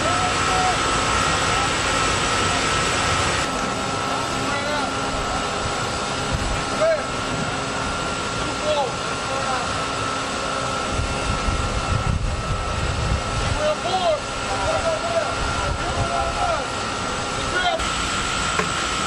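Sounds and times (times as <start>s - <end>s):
high whine: 0.0s - 19.0s
shipboard machinery drone: 0.0s - 19.0s
wind rumble on microphone: 10.8s - 13.8s.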